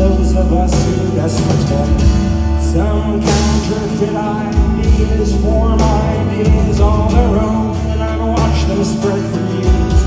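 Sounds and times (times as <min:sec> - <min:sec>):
man singing: 0:00.0 - 0:10.0
rock band playing live: 0:00.0 - 0:10.0.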